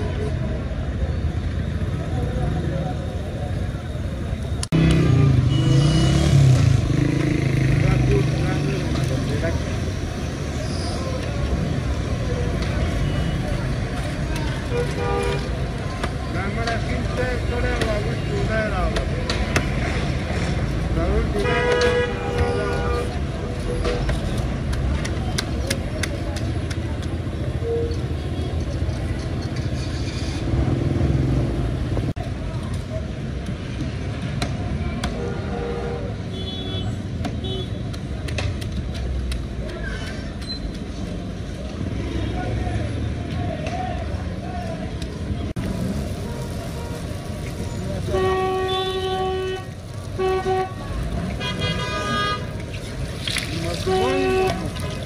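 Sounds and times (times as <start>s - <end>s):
street traffic rumbling: 0.0s - 55.0s
people talking: 7.5s - 9.8s, 10.6s - 19.6s, 53.2s - 55.0s
car horns honking: 21.4s - 24.0s, 48.1s - 52.6s, 53.8s - 54.8s.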